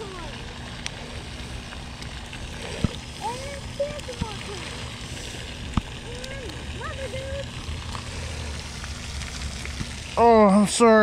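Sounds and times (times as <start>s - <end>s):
outdoor hiss: 0.0s - 11.0s.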